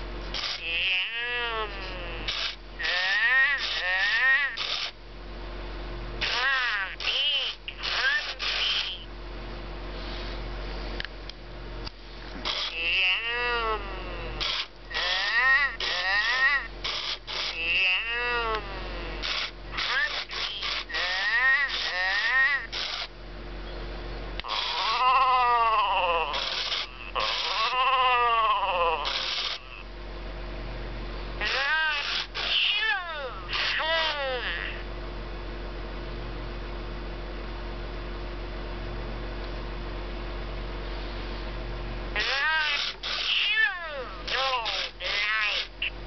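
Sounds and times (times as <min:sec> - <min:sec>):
short noisy bursts: 0:00.3 - 0:00.8, 0:02.2 - 0:05.0, 0:06.2 - 0:09.1, 0:12.4 - 0:13.2, 0:14.4 - 0:17.8, 0:19.2 - 0:23.1, 0:24.4 - 0:25.1, 0:26.3 - 0:27.8, 0:29.0 - 0:29.8, 0:31.4 - 0:34.2, 0:42.2 - 0:46.0
toy electronic voice warbling: 0:00.4 - 0:05.0, 0:06.2 - 0:09.1, 0:12.4 - 0:23.1, 0:24.4 - 0:29.8, 0:31.4 - 0:34.8, 0:42.2 - 0:46.0.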